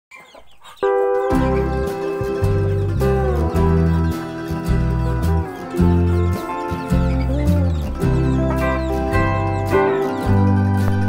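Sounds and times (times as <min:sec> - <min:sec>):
chickens clucking: 0:00.1 - 0:11.0
background music with bass line: 0:01.1 - 0:11.0.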